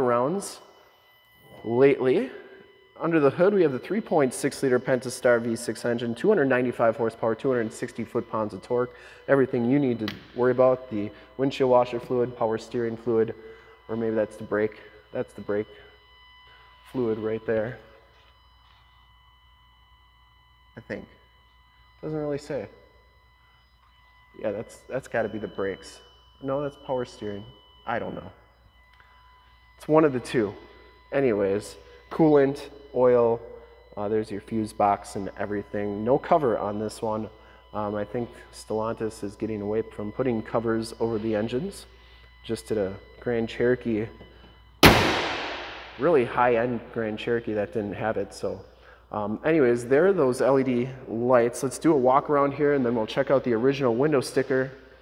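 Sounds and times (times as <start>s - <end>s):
faint high-pitched whine: 0.0s - 55.0s.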